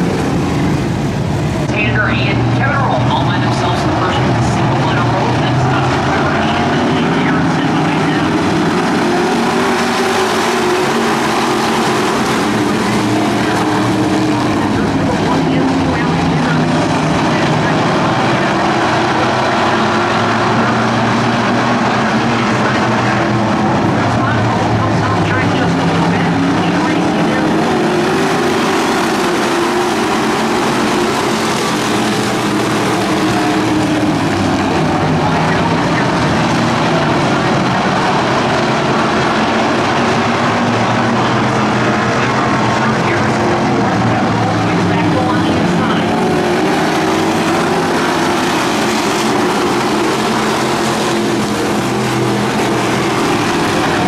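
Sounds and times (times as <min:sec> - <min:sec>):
race car engines roaring: 0:00.0 - 0:54.0.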